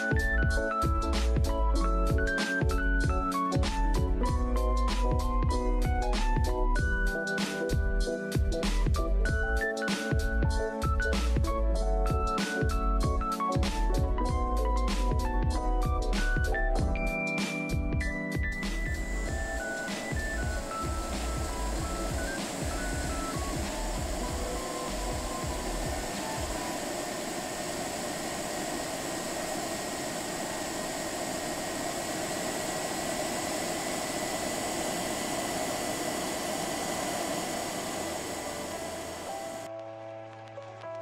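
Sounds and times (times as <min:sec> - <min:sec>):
pet dryer blowing: 0:00.0 - 0:11.5, 0:18.5 - 0:39.7
background music with beat: 0:00.0 - 0:27.5
faint high whine: 0:18.4 - 0:39.7.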